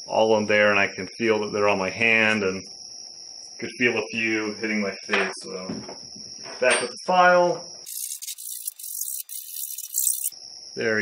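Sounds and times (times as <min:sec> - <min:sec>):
metal file rasping: 0:07.9 - 0:10.3.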